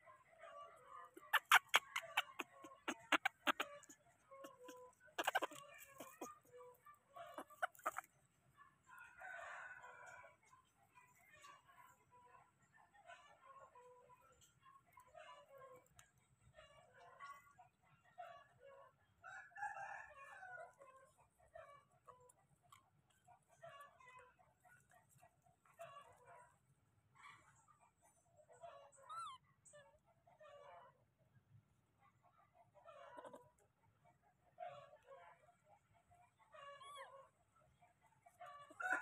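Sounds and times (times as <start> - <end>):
high sliding animal call: 1.2 - 3.9.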